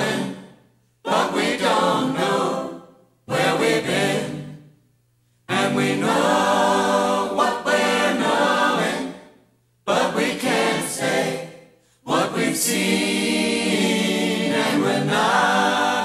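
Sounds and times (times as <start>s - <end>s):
choir singing with music: 0.0s - 16.0s.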